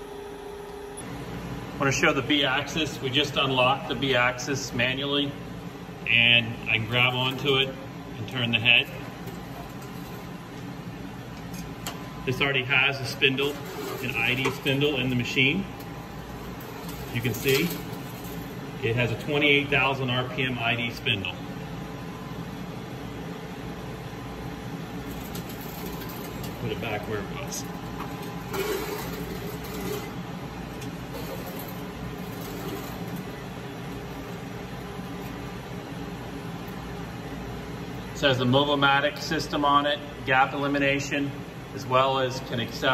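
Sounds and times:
grinding machine hum and hiss: 0.0s - 42.9s.

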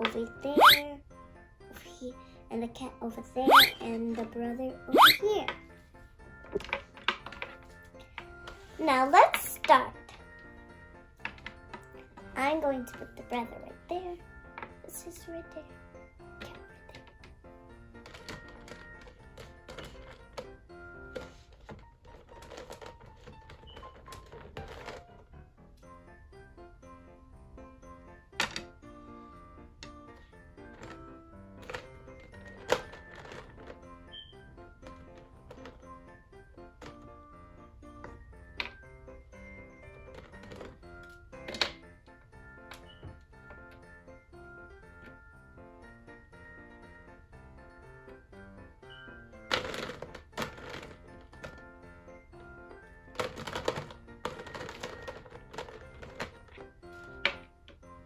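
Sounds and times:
christmas music: 0.0s - 58.0s
plastic toys clattering in a jar: 6.4s - 8.3s, 11.2s - 13.4s, 16.4s - 25.2s, 30.6s - 34.1s, 34.8s - 36.1s, 39.8s - 41.9s, 49.4s - 57.9s.

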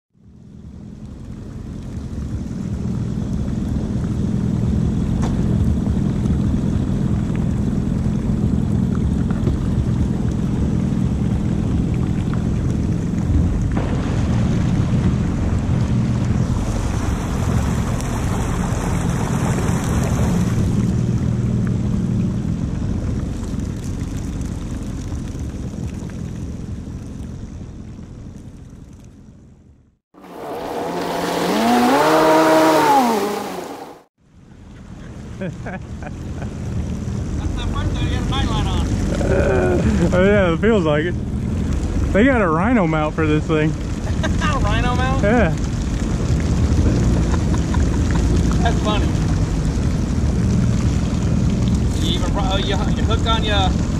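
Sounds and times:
personal watercraft engine running: 0.2s - 53.9s
rushing water and wind: 1.1s - 27.2s, 30.2s - 34.1s, 35.3s - 53.9s
engine revving: 30.2s - 34.1s, 37.1s - 53.9s.

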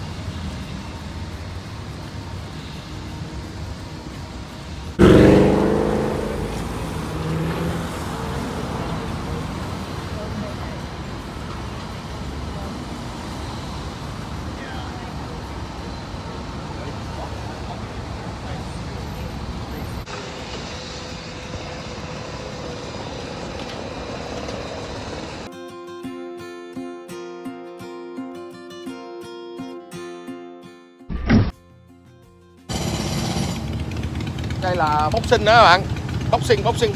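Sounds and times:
cars passing: 0.0s - 25.5s, 32.7s - 36.9s
street traffic noise: 0.0s - 25.7s, 32.1s - 36.9s
car passing by: 4.9s - 15.1s.

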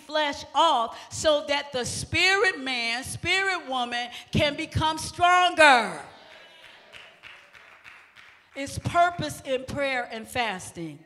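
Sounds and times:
woman's amplified voice: 0.0s - 6.1s, 8.6s - 11.0s.

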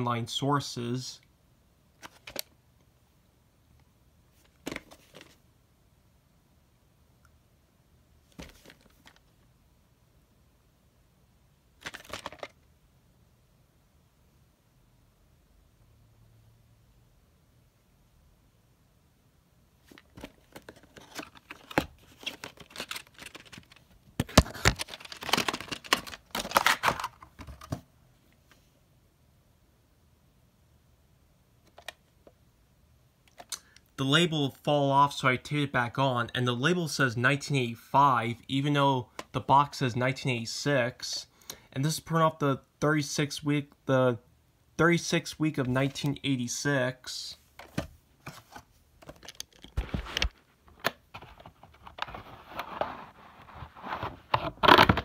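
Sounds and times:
cassette scraping out of sleeve: 51.1s - 55.0s.

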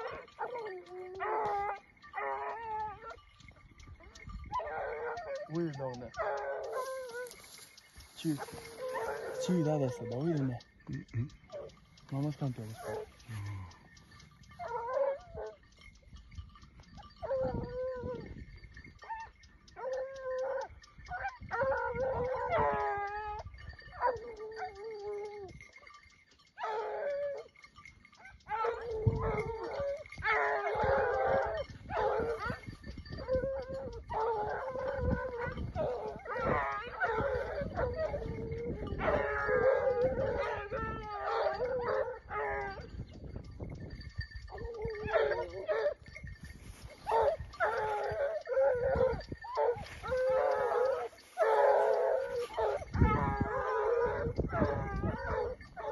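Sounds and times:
hounds baying and howling: 0.0s - 55.9s.

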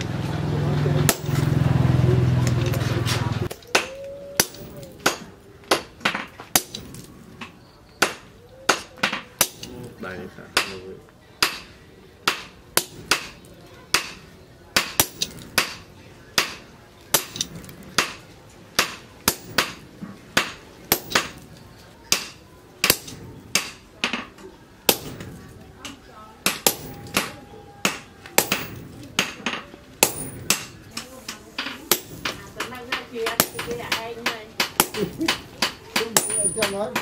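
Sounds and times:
sledgehammer striking metal: 1.0s - 1.6s, 14.8s - 18.2s, 18.8s - 19.8s, 20.4s - 21.4s, 22.1s - 23.8s, 24.9s - 25.4s, 26.5s - 30.8s, 31.9s - 32.4s, 34.6s - 37.0s.

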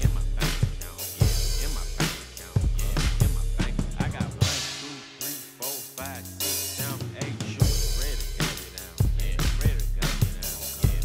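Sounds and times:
drum kit kick and snare: 0.0s - 11.0s
hip-hop backing track: 0.0s - 11.0s.

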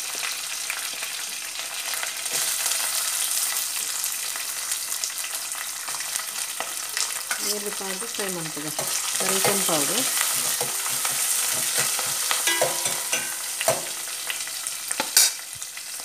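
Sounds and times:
oil sizzling and crackling: 0.0s - 16.0s.

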